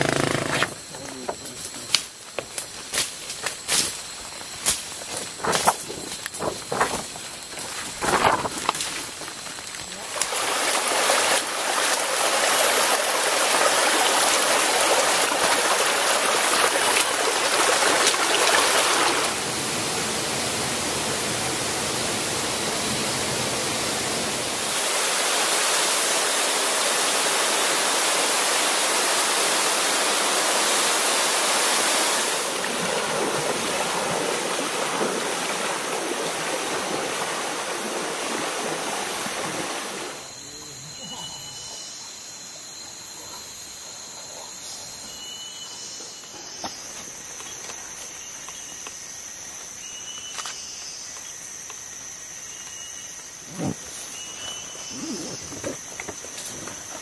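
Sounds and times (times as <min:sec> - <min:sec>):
stream and waterfall rushing: 0:10.0 - 0:40.2.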